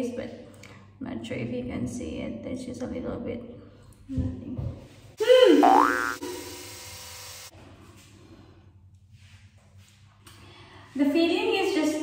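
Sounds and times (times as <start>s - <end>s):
cartoon sound effect tones: 5.5s - 6.3s.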